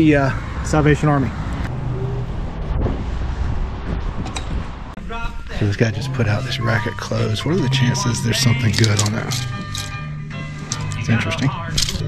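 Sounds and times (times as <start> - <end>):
distant traffic: 0.0 - 12.0
wind on microphone: 1.5 - 5.0.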